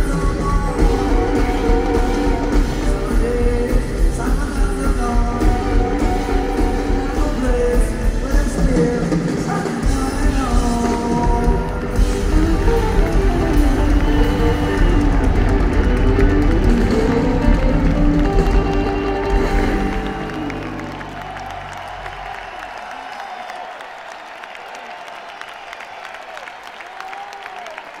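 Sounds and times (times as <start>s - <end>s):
rock band playing live: 0.0s - 22.3s
crowd applauding and cheering: 0.0s - 28.0s.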